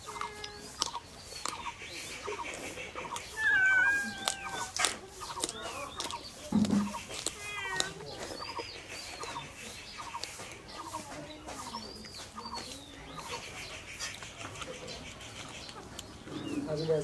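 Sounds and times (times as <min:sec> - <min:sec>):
carrot being bitten and chewed: 0:00.0 - 0:10.6
animal calls: 0:00.0 - 0:16.8
chirps: 0:00.0 - 0:17.0.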